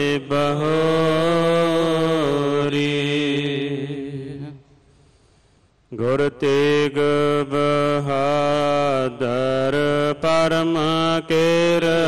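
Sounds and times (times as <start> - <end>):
man chanting: 0.0 - 4.8, 5.9 - 12.0.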